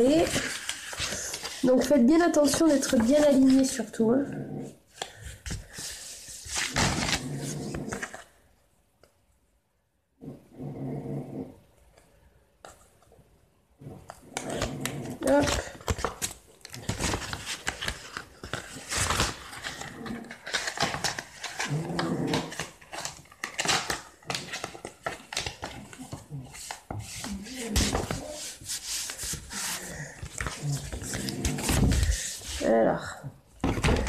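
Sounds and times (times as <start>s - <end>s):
paper rustling: 0.0s - 4.0s, 4.9s - 8.4s, 14.0s - 32.9s, 33.6s - 34.0s.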